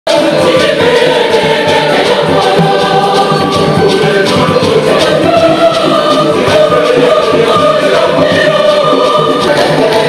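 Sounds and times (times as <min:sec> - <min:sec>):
choir singing: 0:00.1 - 0:10.0
regular beat: 0:00.1 - 0:10.0.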